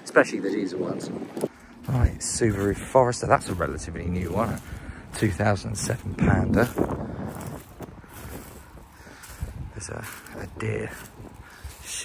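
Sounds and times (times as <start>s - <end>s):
wind on microphone: 0.6s - 12.0s.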